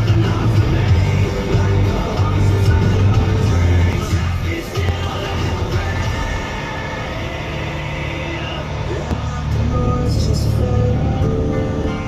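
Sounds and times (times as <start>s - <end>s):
music playing: 0.0s - 12.0s
road noise: 0.0s - 12.0s
truck engine drone: 0.0s - 12.0s.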